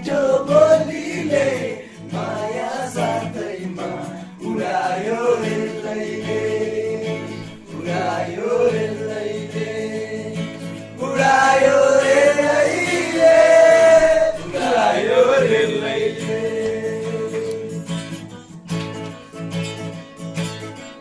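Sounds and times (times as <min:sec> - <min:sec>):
men singing together: 0:00.0 - 0:17.9
acoustic guitars: 0:00.0 - 0:21.0.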